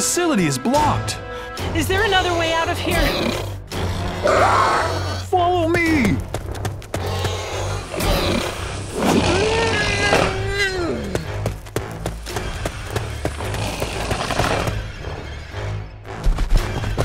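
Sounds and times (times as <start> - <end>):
dinosaur cry: 4.0 - 5.3, 7.3 - 11.0.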